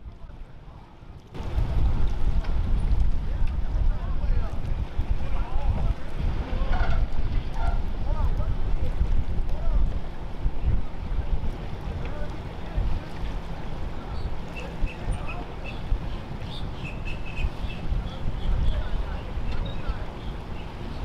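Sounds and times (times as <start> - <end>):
wind buffeting microphone: 1.3 - 21.0.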